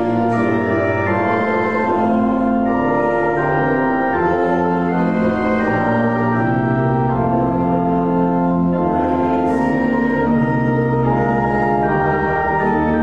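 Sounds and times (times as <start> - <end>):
church organ playing a hymn: 0.0 - 13.0.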